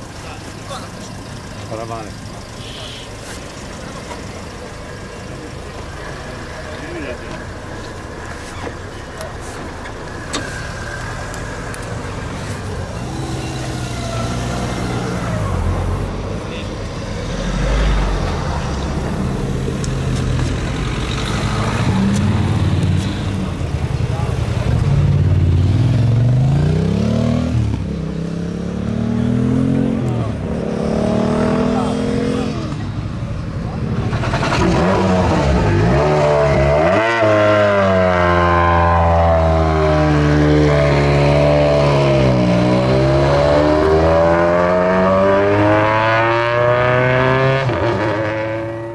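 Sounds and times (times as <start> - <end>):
people talking: 0.0 - 3.2, 3.8 - 7.9, 16.3 - 16.8, 23.0 - 25.3, 31.4 - 34.1
vehicle engines revving: 0.0 - 48.9.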